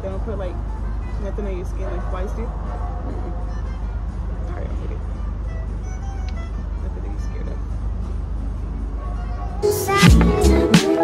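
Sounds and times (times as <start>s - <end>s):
faint background music: 0.0s - 11.0s
street traffic rumble: 0.0s - 11.0s.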